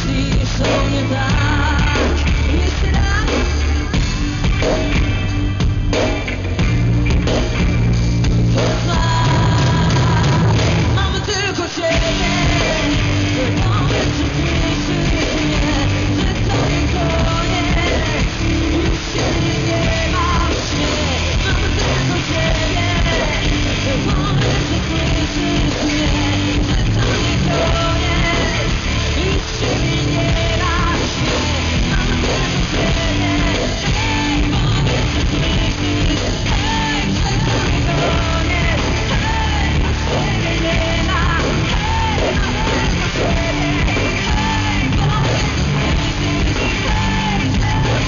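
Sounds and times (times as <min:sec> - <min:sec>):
woman singing: 0:00.0 - 0:04.7, 0:08.5 - 0:48.0
electric guitar: 0:00.0 - 0:48.0
rock band playing: 0:00.0 - 0:48.0.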